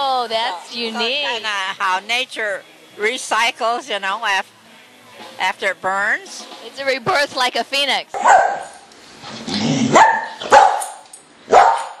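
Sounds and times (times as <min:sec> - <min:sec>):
dog barking: 0:08.2 - 0:08.8, 0:09.9 - 0:12.0.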